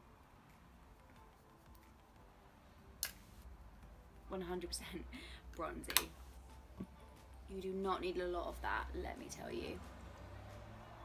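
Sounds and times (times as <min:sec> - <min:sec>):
sharp click with hiss: 0:03.0 - 0:03.3.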